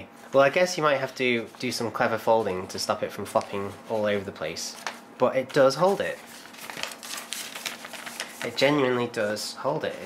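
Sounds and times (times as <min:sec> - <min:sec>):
paper rustling and crinkling: 0:01.4 - 0:09.4.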